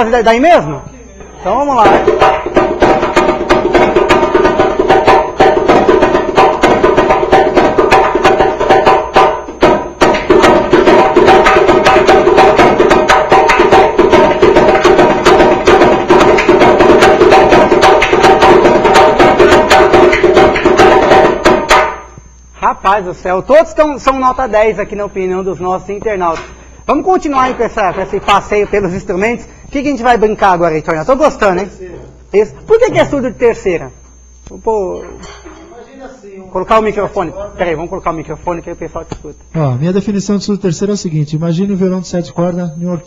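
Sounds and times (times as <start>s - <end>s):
high-pitched samba drum: 0.0s - 31.7s, 32.3s - 35.8s.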